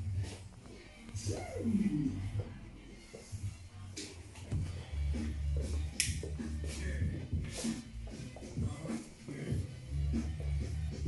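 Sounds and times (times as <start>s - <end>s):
background music with bass: 0.0s - 11.0s
sharp snap: 5.9s - 6.2s.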